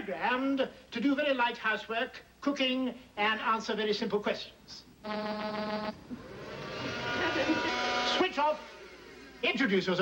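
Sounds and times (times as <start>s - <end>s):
whirring hum: 4.9s - 10.0s
electronic buzz: 5.0s - 9.4s.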